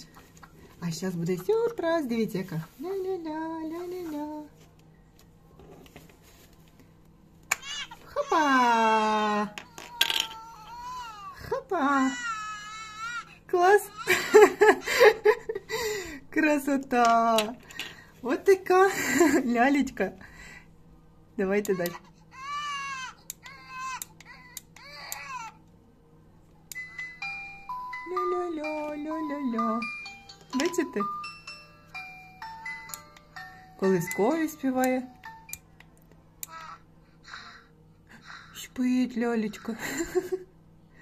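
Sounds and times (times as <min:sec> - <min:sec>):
low room hum: 0:00.0 - 0:41.0
toy doll baby crying: 0:07.5 - 0:09.0, 0:09.7 - 0:14.4, 0:21.8 - 0:25.6, 0:36.4 - 0:38.6.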